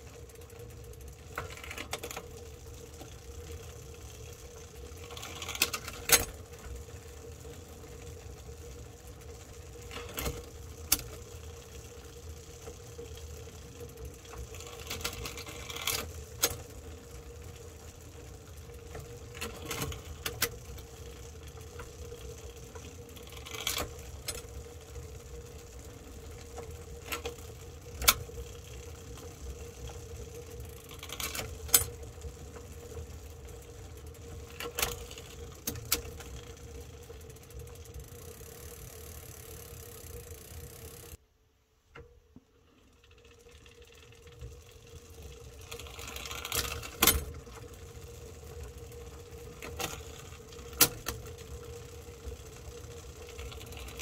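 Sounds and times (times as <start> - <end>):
bike chain whirring: 0.0 - 41.2, 42.6 - 54.0.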